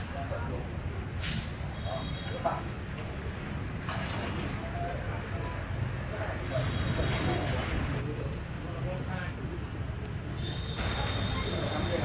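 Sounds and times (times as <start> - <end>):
brief hiss: 1.2 - 1.7.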